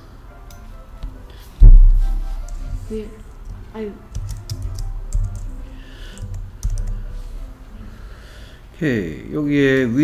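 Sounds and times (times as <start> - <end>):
keyboard typing: 2.2 - 2.7, 3.4 - 7.2.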